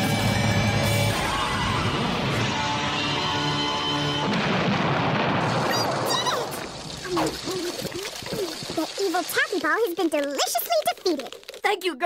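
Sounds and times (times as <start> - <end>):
cartoon explosion blast: 4.2 - 8.8.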